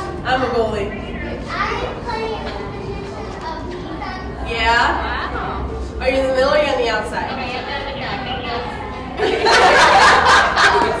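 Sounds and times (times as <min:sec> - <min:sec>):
children talking at play: 0:00.0 - 0:09.4.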